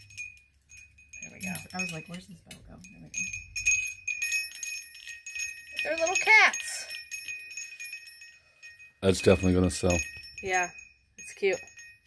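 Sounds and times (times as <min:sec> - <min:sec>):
metal wind chime ringing: 0:00.0 - 0:12.0
small bell ringing: 0:00.0 - 0:12.0.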